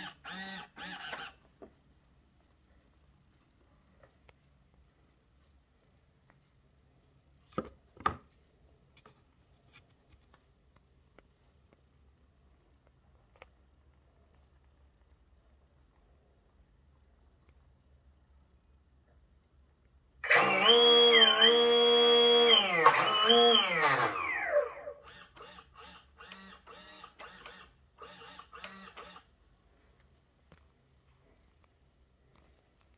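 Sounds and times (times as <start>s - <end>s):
electric motor whine: 20.2s - 25.6s.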